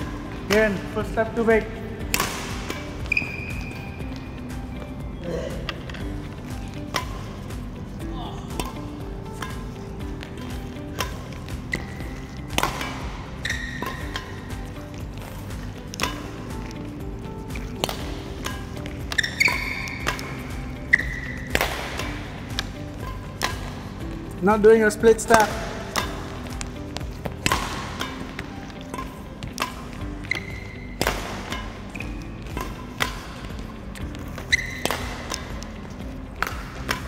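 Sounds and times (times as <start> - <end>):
background music: 0.0 - 37.0
court shoes squeaking: 0.0 - 37.0
rackets striking shuttlecocks: 0.0 - 37.0.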